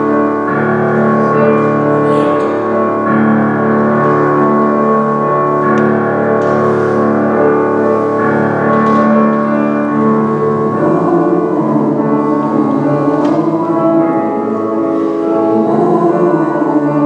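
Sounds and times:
slow keyboard chords: 0.0 - 17.0.

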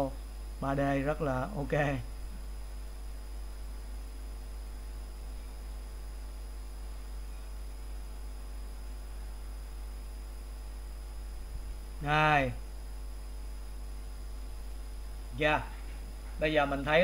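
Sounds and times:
electrical hum and hiss: 0.0 - 17.0
faint high whine: 0.0 - 17.0.

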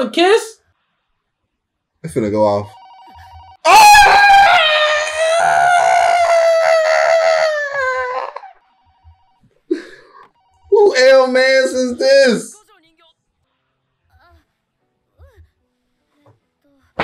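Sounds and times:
telephone ringing faintly: 2.4 - 3.7, 8.6 - 12.5
long high-pitched yell: 3.7 - 8.5.

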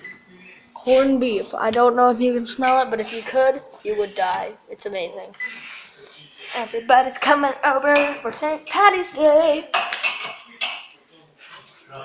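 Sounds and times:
dishes and cutlery clattering: 7.2 - 8.8, 9.7 - 11.7.

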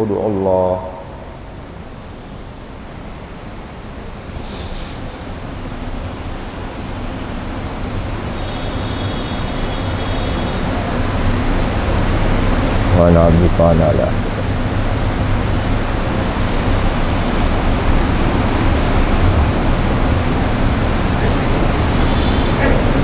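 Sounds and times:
steady hiss: 0.0 - 23.0.

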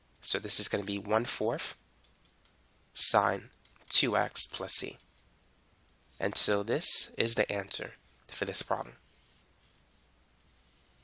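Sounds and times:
stylus scratching on tablet: 7.9 - 11.0.

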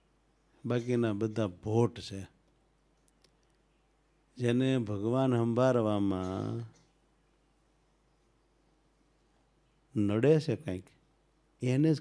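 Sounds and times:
man speaking: 0.6 - 2.4, 4.4 - 6.8, 9.9 - 11.0, 11.6 - 12.0
faint clicks: 2.4 - 3.7.

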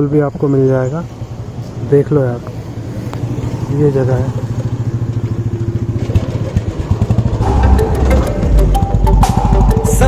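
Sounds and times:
motorcycle engine idling: 0.0 - 10.0
background music: 7.4 - 10.0.

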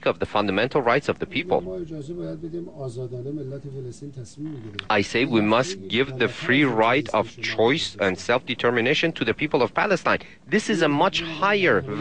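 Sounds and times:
faint man speaking: 1.2 - 8.3
person interpreting: 4.1 - 12.0.

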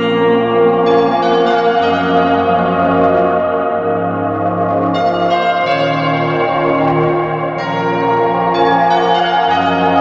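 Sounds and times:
sustained ringing tones music: 0.0 - 10.0.

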